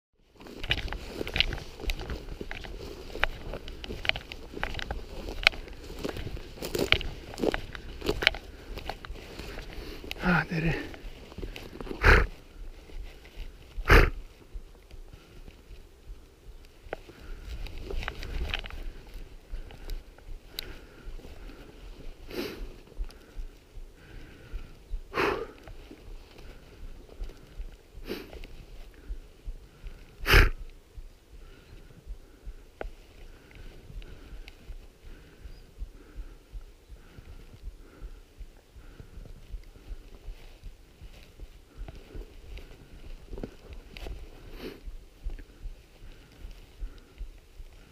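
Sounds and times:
brush rustling: 0.2s - 47.9s
footsteps crunching in scrub: 0.2s - 47.9s.

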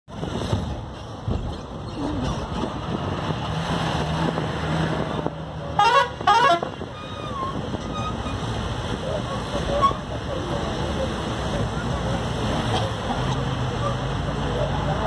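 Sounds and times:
road and engine noise: 0.1s - 15.0s
vehicle horn blasts: 5.8s - 8.2s.

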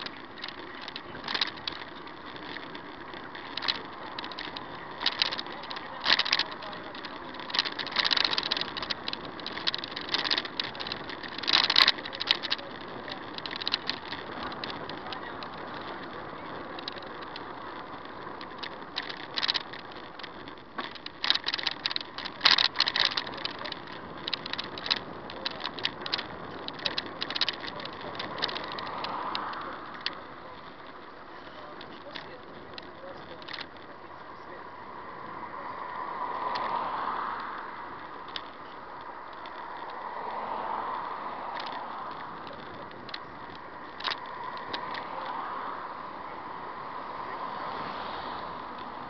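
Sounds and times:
irregular rattles and clicks: 0.0s - 49.0s
road hiss: 43.7s - 49.0s.

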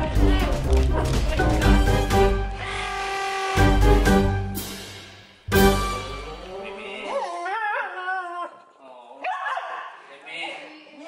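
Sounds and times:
background music chord: 0.0s - 7.0s.

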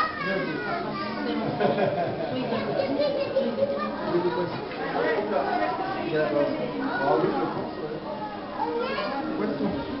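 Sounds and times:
children's voices: 0.0s - 6.2s, 6.8s - 10.0s
people talking: 0.0s - 10.0s.

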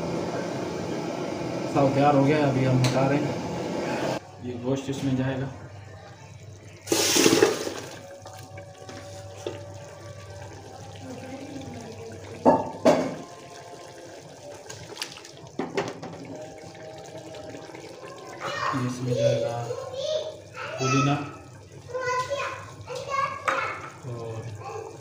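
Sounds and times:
curry splashing into a pot: 6.7s - 25.0s
metal knocks against a pot: 12.4s - 13.2s, 15.6s - 16.3s.

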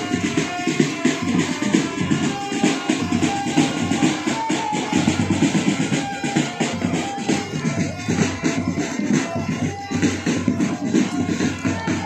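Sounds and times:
marching drum band playing: 0.0s - 12.0s.

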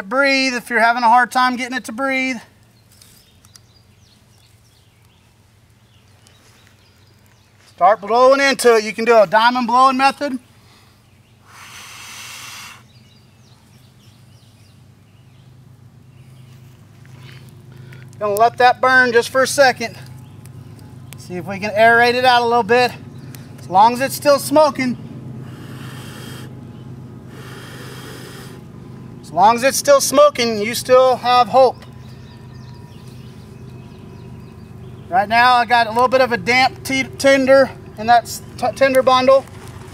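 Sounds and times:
steady low hum: 8.9s - 39.9s
breath blowing hiss: 10.5s - 13.0s, 25.4s - 26.6s, 27.2s - 28.7s
faint bird chirps: 31.6s - 35.2s.

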